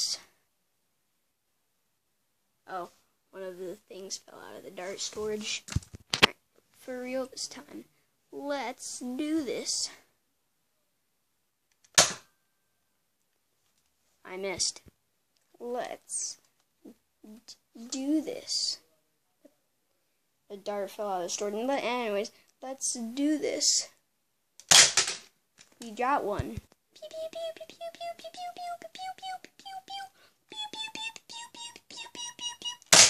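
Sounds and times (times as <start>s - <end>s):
toy blaster snap: 30.8s - 33.0s.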